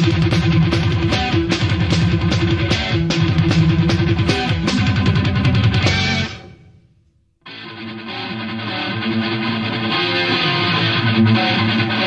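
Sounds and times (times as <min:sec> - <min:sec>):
heavy metal song: 0:00.0 - 0:06.6, 0:07.5 - 0:12.0.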